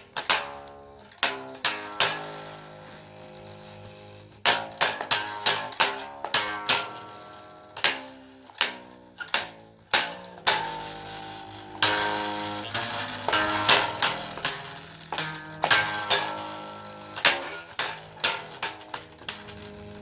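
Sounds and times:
solo guitar plucking and strumming: 0.0 - 20.0.

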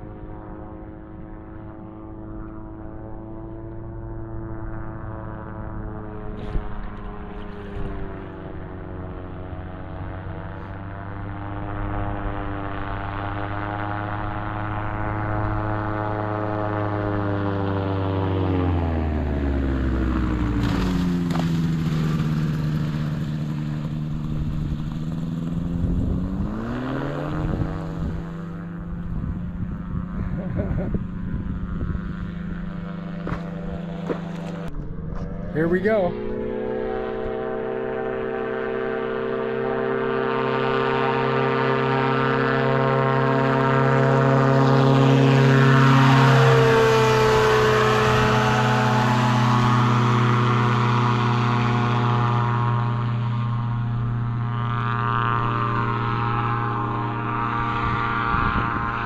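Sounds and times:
seaplane propeller engine: 0.0 - 59.0.

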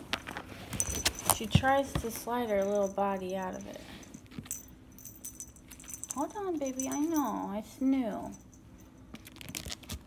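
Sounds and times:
metal harness fittings jingling: 2.4 - 7.5.

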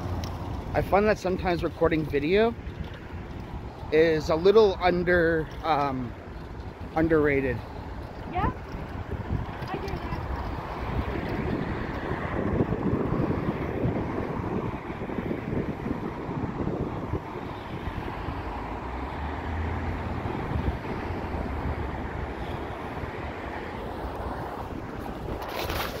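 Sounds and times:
road traffic noise: 0.0 - 26.0
wind buffeting microphone: 0.0 - 26.0.

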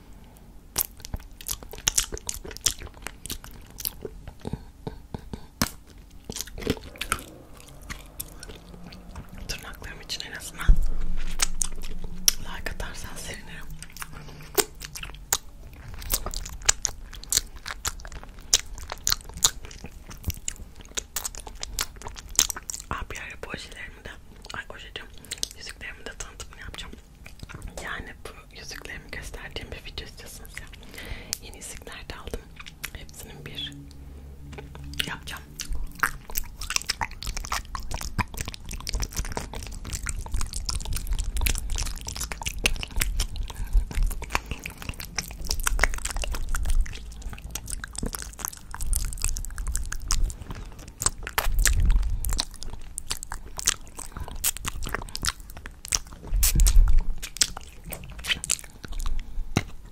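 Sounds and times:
licking and sucking candy: 0.2 - 28.0, 28.7 - 59.9
tongue clicks: 0.8 - 23.3, 29.9 - 59.8
wet lip smacks: 0.8 - 23.3, 28.8 - 33.8, 34.5 - 59.8.

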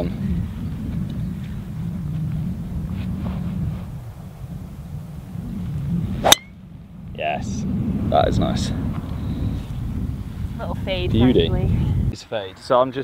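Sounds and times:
wind rumble on microphone: 0.0 - 12.4
golf club striking ball: 6.2 - 6.6.

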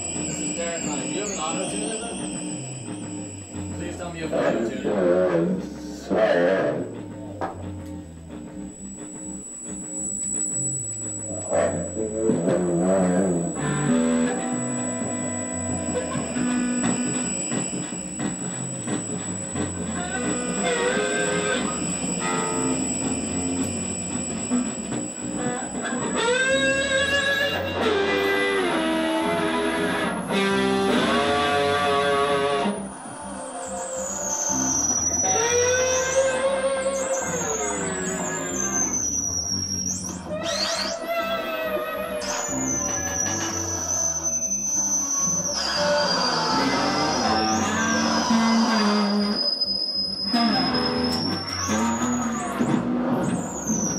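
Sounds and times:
guitar-led rock music: 0.1 - 33.0.

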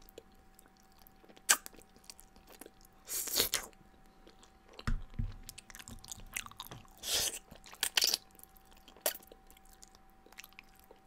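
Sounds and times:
chewing: 0.0 - 11.0.

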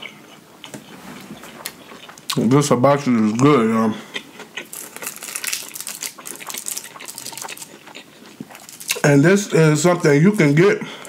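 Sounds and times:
chewing with wet mouth clicks: 0.0 - 2.5, 4.1 - 9.0.

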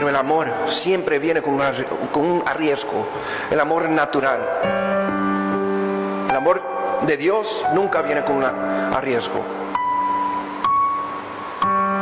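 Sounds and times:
soft piano chords: 0.0 - 12.0.

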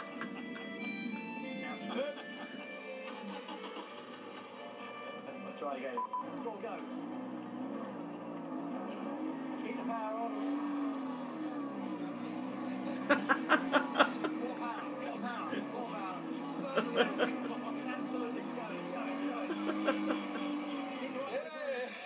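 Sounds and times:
men laughing: 0.0 - 0.9, 1.5 - 4.7, 12.4 - 21.4
car engine droning: 4.6 - 21.4.

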